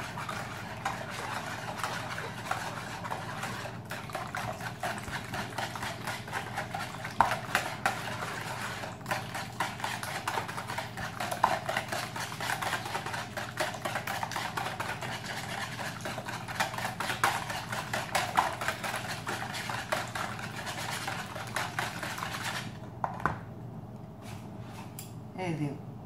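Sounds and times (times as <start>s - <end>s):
whisk beating eggs in bowl: 0.0s - 22.8s.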